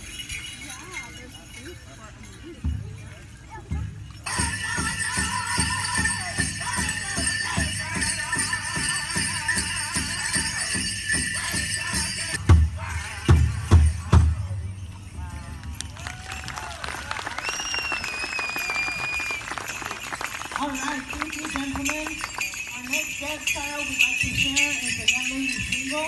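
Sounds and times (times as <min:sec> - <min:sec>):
bells jingling: 0:00.0 - 0:26.0
drum beating steady pulse: 0:02.6 - 0:16.0
high-pitched singing: 0:04.3 - 0:14.2
thin whistling tone: 0:17.4 - 0:19.7.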